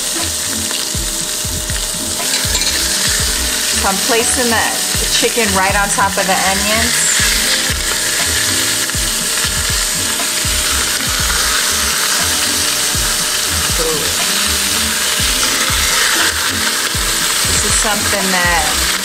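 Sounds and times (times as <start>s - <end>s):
chicken sizzling in oil: 0.0s - 19.0s.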